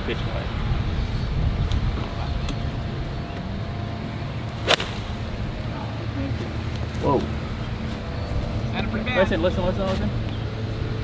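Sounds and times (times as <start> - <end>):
low background rumble: 0.4 - 11.0
golf club striking ball: 4.6 - 5.6.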